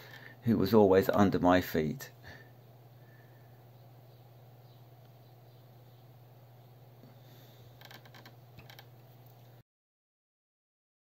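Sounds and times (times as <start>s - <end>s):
faint low hum: 0.0s - 9.6s.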